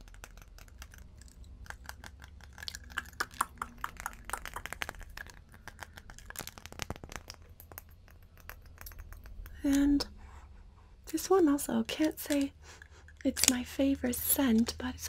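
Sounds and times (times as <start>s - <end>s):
fingers tapping glass bottle: 0.0s - 9.6s.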